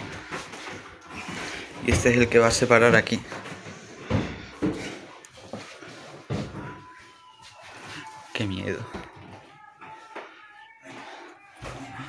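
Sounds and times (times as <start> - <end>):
voices murmuring: 0.0 - 12.0.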